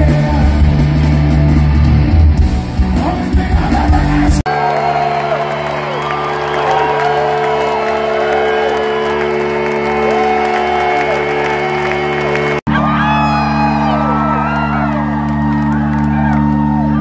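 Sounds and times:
live rock band playing: 0:00.0 - 0:17.0
crowd whooping and cheering: 0:03.6 - 0:17.0.

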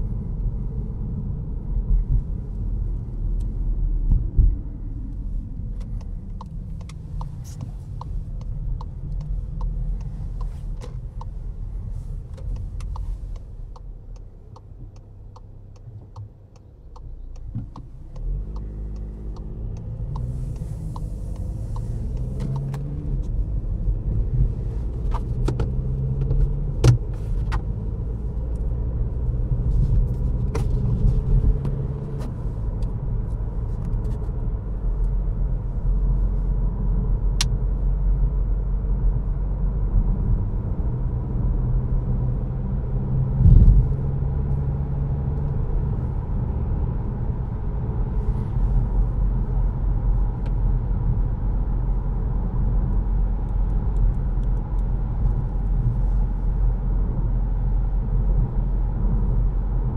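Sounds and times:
low rumble of engine and tyres: 0:00.0 - 0:59.9.

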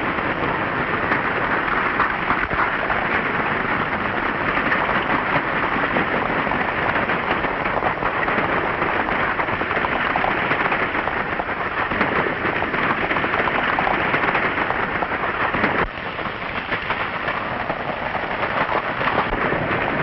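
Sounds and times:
galloping hooves: 0:00.0 - 0:20.0.

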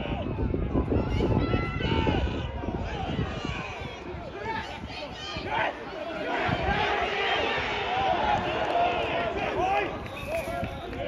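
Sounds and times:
voices shouting and calling: 0:00.0 - 0:11.0.

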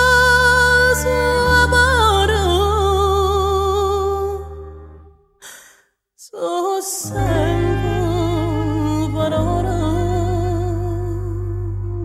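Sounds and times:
woman singing with vibrato: 0:00.0 - 0:05.0, 0:06.2 - 0:12.0.

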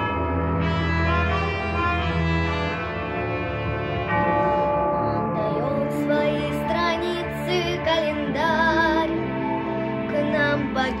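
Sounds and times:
bell-like struck chord: 0:00.0 - 0:07.6
orchestral backing track: 0:00.0 - 0:11.0.

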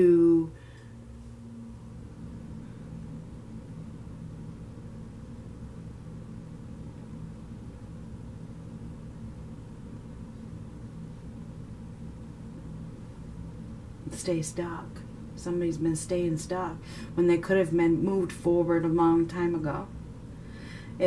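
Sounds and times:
low background hum: 0:00.0 - 0:21.0.

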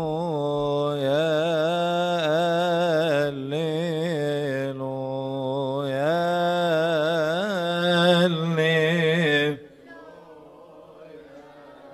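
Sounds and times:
man chanting: 0:00.0 - 0:09.7.

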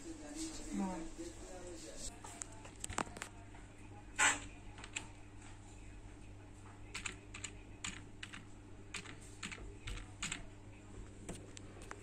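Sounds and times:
keyboard keys clicking: 0:06.9 - 0:10.4.

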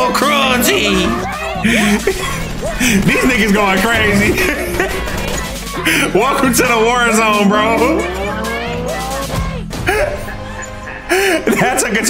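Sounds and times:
background music: 0:00.0 - 0:12.0
car engine revving: 0:00.1 - 0:08.8.

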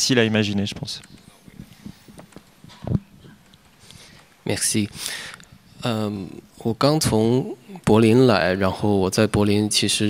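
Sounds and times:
microphone handling knocks: 0:00.8 - 0:03.8.

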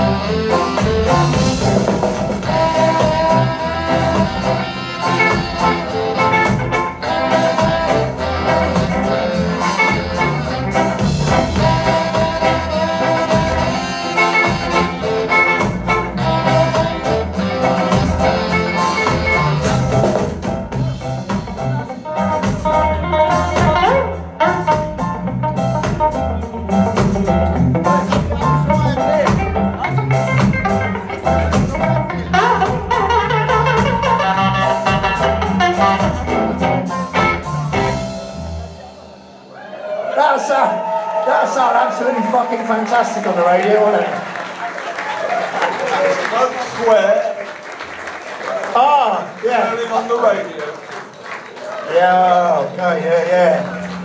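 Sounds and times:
saxophones: 0:00.0 - 0:20.1, 0:29.8 - 0:39.5
electric guitar: 0:00.0 - 0:39.3
upright bass: 0:00.0 - 0:39.5
drum kit: 0:00.0 - 0:40.2.

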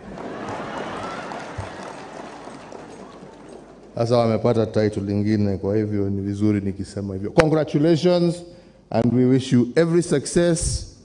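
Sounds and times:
crowd applauding: 0:00.0 - 0:04.4.

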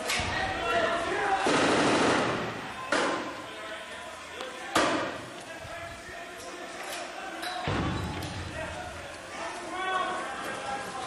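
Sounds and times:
rapid gunfire echoing: 0:01.4 - 0:02.6
men's voices: 0:02.6 - 0:11.0.

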